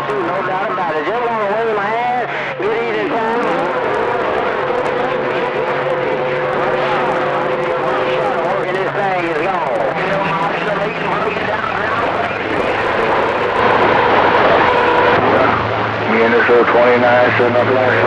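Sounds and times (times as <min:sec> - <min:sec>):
radio static hiss: 0:00.0 - 0:18.0
warbling tone: 0:00.0 - 0:18.0.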